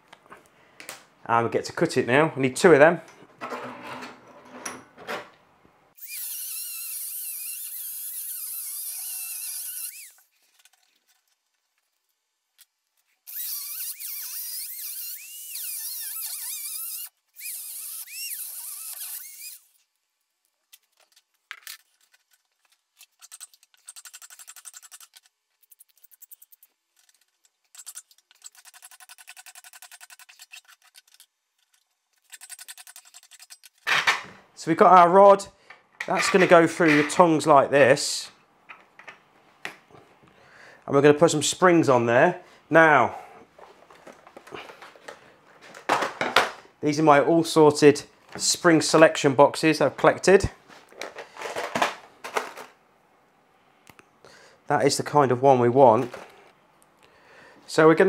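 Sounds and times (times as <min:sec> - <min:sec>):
rotary tool cutting steel rod: 0:06.0 - 0:10.3, 0:13.3 - 0:19.7, 0:27.7 - 0:31.2.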